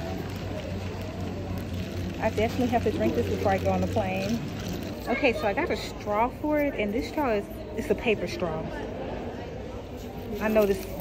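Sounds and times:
airport terminal hum: 0.0s - 11.0s
faint background voices: 0.0s - 11.0s.

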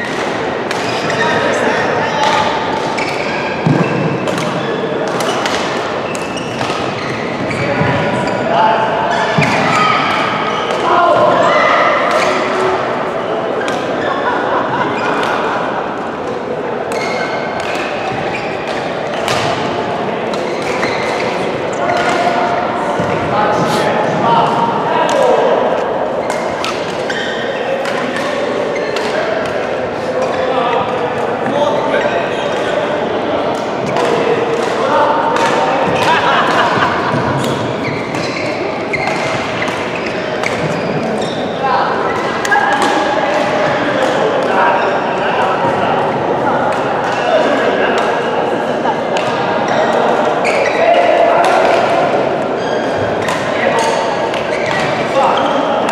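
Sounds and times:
voices chatting: 7.1s - 55.9s.

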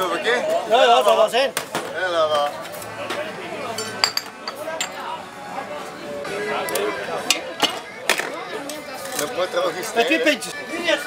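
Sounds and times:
background chatter: 0.0s - 11.0s
glasses clinking: 3.7s - 5.0s.

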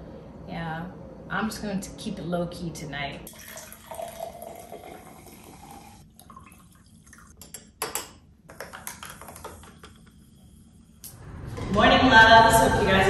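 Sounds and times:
fizzy drink pouring into glass: 3.3s - 7.3s.

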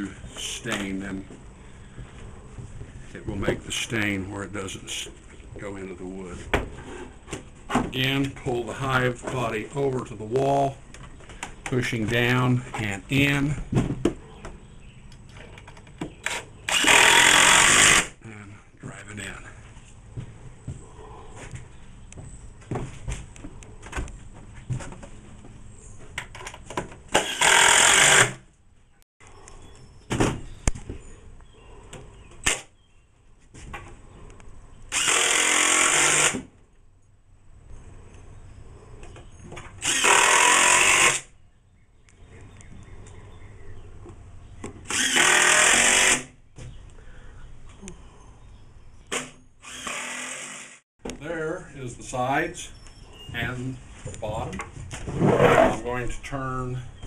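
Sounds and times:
screw gun driving screws into wood: 16.2s - 18.1s, 27.1s - 28.4s, 34.9s - 36.5s, 39.8s - 41.3s, 44.8s - 46.3s.

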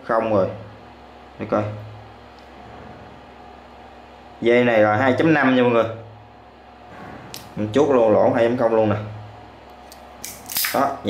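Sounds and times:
wire stripper clicks: 9.8s - 10.9s
wire stripper snap and rasp: 9.8s - 10.9s.

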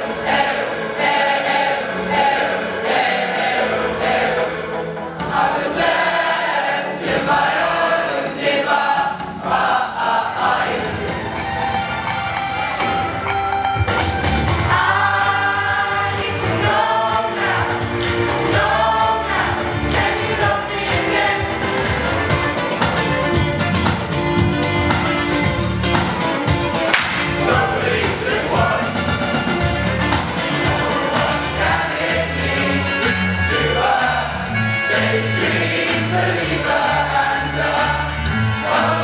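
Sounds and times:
choir singing: 0.0s - 13.5s, 14.4s - 23.3s, 27.2s - 39.0s.

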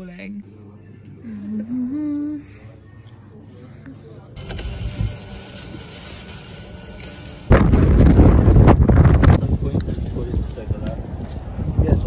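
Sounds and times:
wind buffeting microphone: 7.5s - 12.0s.

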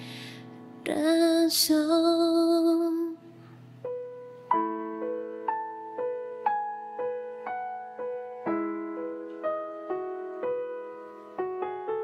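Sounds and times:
woman singing a ballad: 0.0s - 3.5s
soft piano: 0.0s - 12.0s.

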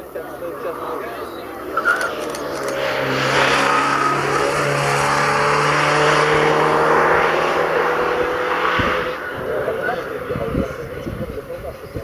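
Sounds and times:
rally car engine passing by: 0.7s - 11.6s.

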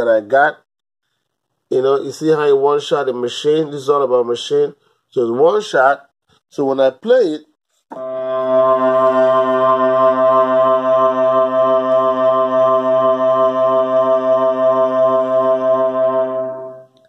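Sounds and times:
droning synth note: 7.9s - 17.0s.

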